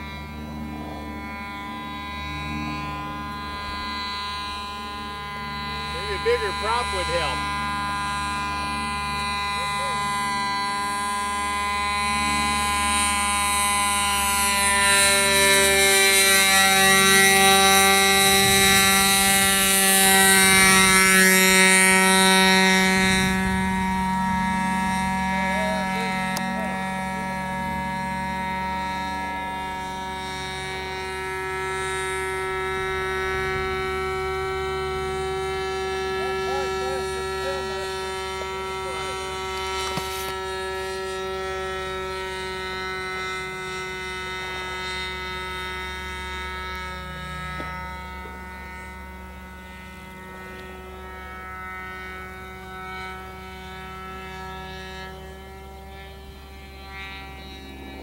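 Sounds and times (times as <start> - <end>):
model airplane motor droning: 0.0 - 58.0.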